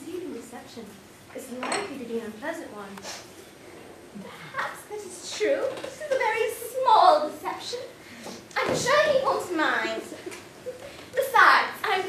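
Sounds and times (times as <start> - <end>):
woman speaking: 0.0 - 3.2, 4.2 - 8.0, 8.6 - 10.2, 11.2 - 12.0.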